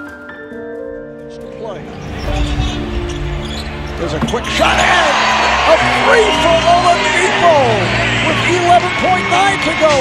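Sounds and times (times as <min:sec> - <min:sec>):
arena crowd noise: 0:02.2 - 0:10.0.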